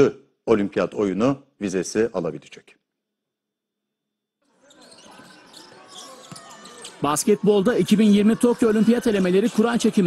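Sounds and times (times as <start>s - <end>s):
low arena background noise: 4.4s - 10.0s.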